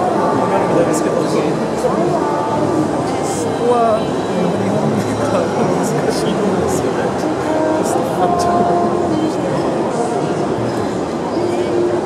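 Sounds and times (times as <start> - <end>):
hubbub of overlapping voices: 0.0 - 12.0.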